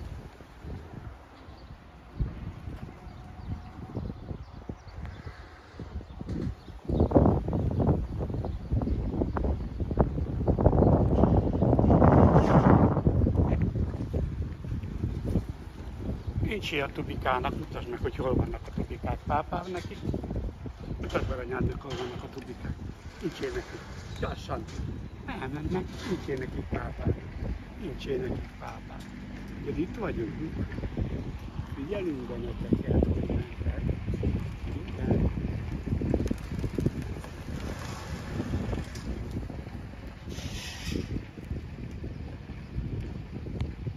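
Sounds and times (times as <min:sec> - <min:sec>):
wind buffeting microphone: 0:00.0 - 0:43.9.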